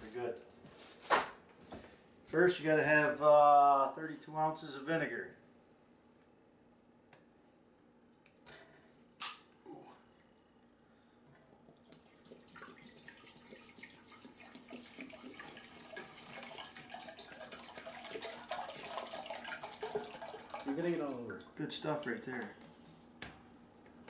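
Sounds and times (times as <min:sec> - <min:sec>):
liquid pouring into a saucepan: 0:11.3 - 0:22.3.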